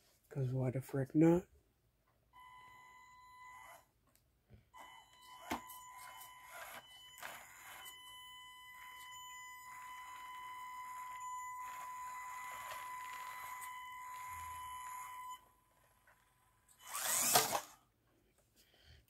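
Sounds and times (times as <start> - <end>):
electric motor high whine: 4.8 - 15.5, 16.8 - 17.8.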